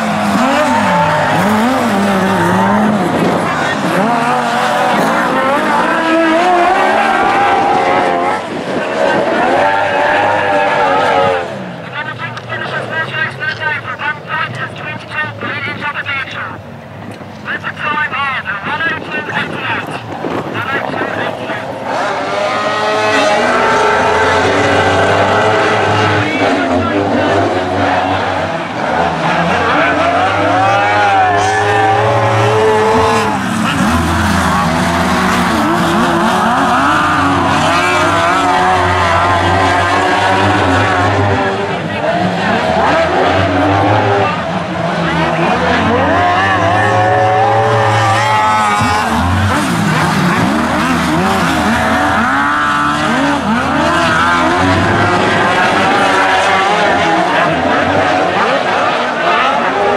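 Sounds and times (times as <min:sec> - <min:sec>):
racing engines revving: 0:00.0 - 0:59.9.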